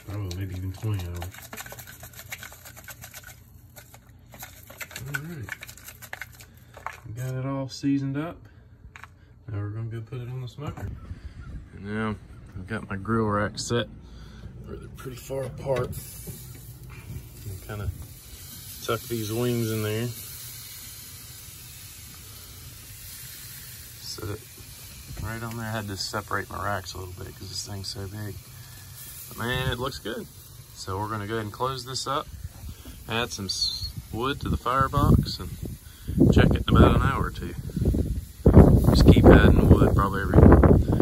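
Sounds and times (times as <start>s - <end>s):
spice shaker clicking: 0.0s - 7.0s
steady hiss: 13.7s - 41.0s.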